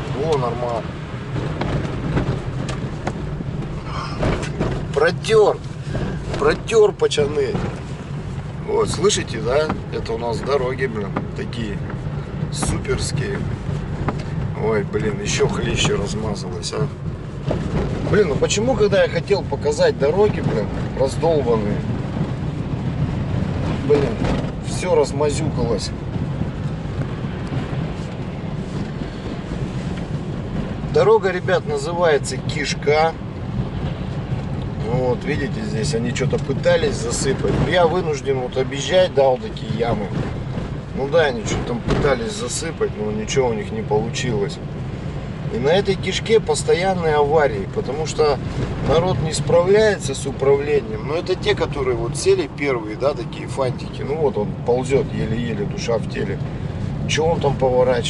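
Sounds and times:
car knocking over potholes: 0:00.0 - 0:53.2
engine and tyres rumbling: 0:00.0 - 0:58.0.

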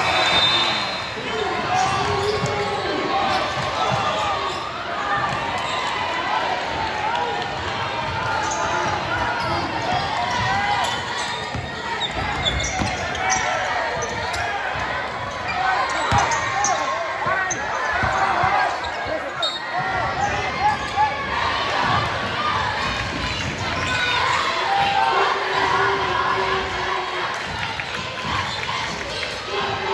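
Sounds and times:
crowd chatter: 0:00.0 - 0:29.9
sneakers squeaking on court: 0:10.3 - 0:14.4.

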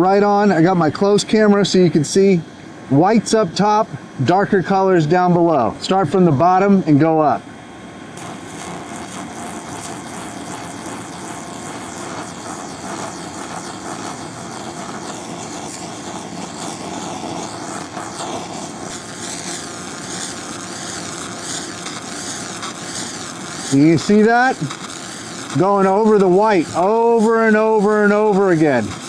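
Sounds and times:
machine fans droning: 0:00.0 - 0:29.0
paint hissing and crackling: 0:08.2 - 0:29.0.

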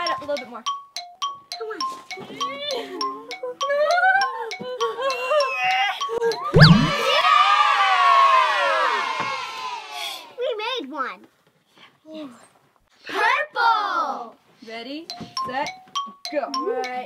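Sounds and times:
children screaming and cheering: 0:06.8 - 0:10.0.

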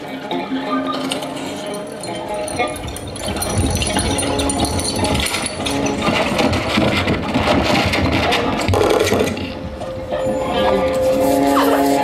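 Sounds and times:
rapid rattling clicks and noise: 0:01.2 - 0:09.6.

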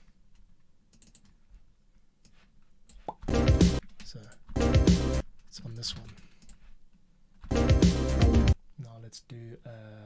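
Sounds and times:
keyboard and mouse clicks: 0:00.0 - 0:01.4, 0:02.2 - 0:04.6, 0:05.2 - 0:06.7.

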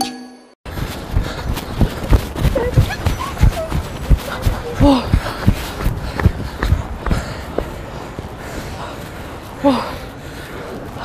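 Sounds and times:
quick footsteps on hard ground: 0:00.6 - 0:11.0.

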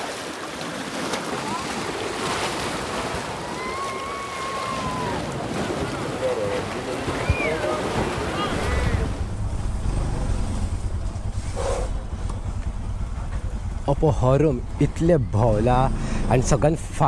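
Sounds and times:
sea waves washing in: 0:00.0 - 0:17.0
wind buffeting microphone: 0:02.7 - 0:17.0
motorcycle engine riding: 0:08.0 - 0:17.0.

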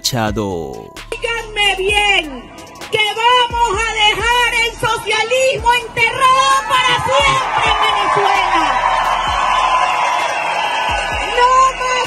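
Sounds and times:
large crowd cheering: 0:05.5 - 0:12.0.

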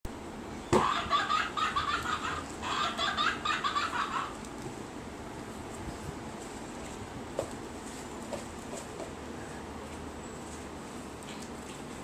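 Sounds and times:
electronic toy clucking notes: 0:00.8 - 0:04.4.

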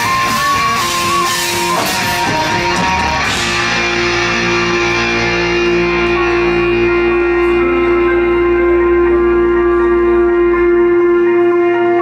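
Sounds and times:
deep bass: 0:00.0 - 0:12.0.

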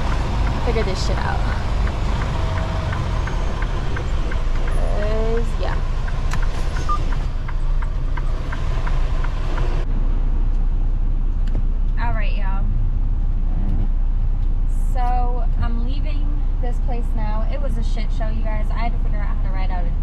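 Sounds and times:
diesel truck engine hum: 0:00.0 - 0:20.0.

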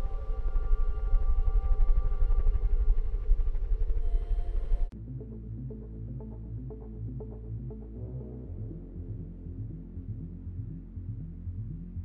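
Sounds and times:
deep flickering low rumble: 0:00.0 - 0:07.8.

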